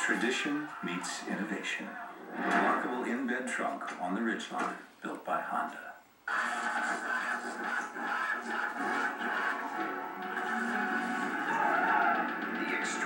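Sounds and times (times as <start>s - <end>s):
television commercial music: 0.0s - 13.0s.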